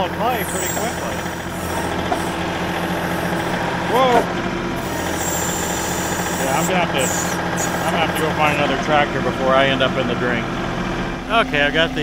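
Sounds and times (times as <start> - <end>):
backhoe digging: 0.0 - 9.4
tractor diesel engine running: 0.0 - 12.0.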